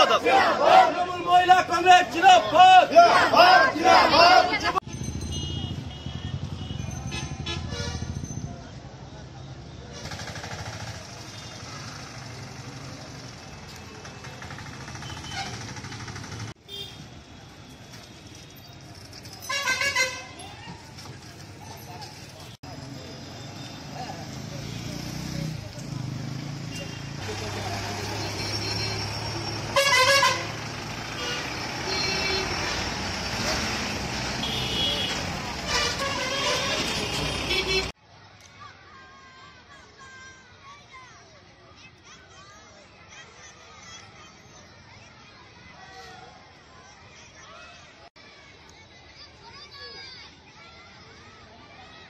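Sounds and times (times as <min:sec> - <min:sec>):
street traffic: 0:00.0 - 0:52.0
car horn honks: 0:15.0 - 0:15.7, 0:28.0 - 0:30.6, 0:31.2 - 0:32.8, 0:34.4 - 0:37.9.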